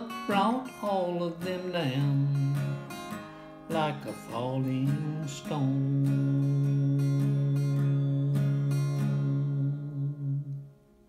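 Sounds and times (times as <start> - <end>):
acoustic guitar strumming chord: 0.0 - 11.0.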